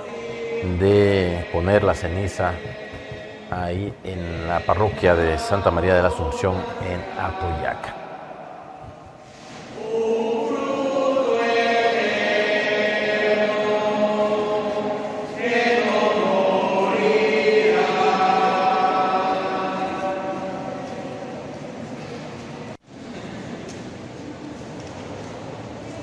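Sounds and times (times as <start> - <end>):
group singing slow hymn: 0.0 - 21.9.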